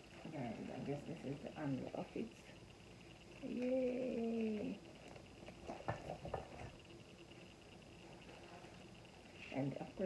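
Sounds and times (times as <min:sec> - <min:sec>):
woman humming: 0:03.4 - 0:04.8.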